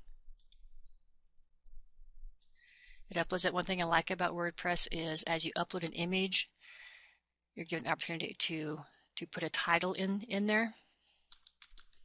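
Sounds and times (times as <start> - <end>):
computer mouse clicks: 0.4 - 1.8, 11.3 - 12.0.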